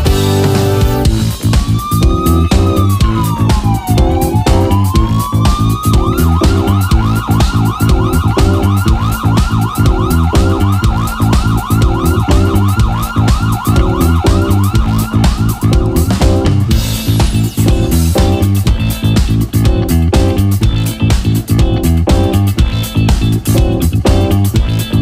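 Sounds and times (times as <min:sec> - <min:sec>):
bass guitar: 0:00.0 - 0:25.0
drums: 0:00.0 - 0:25.0
siren-like lead synth gliding: 0:00.6 - 0:16.8.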